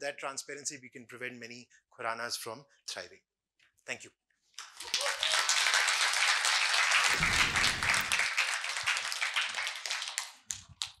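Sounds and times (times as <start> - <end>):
audience clapping: 4.6 - 11.0.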